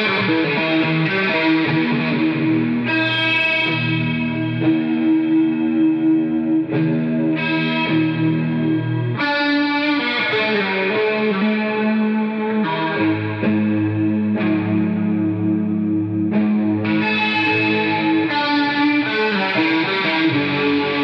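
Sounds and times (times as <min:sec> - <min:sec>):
distorted electric guitar: 0:00.0 - 0:21.0.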